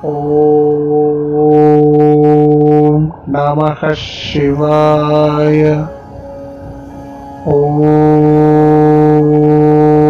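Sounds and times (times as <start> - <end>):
deep male voice chanting: 0.0 - 5.9, 7.5 - 10.0
quiet musical drone: 0.0 - 10.0.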